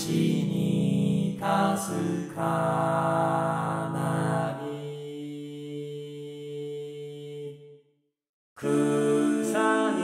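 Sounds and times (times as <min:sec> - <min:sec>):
synthesized male chorus holding chords: 0:00.0 - 0:05.0.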